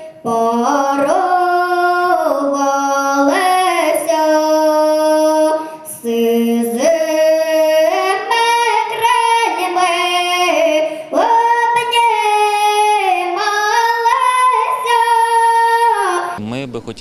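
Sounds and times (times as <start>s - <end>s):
girl singing into a microphone: 0.0s - 16.4s.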